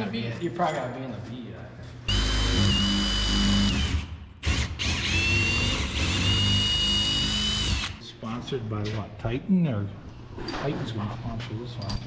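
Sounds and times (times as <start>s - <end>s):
cordless drill whining: 2.1s - 8.0s.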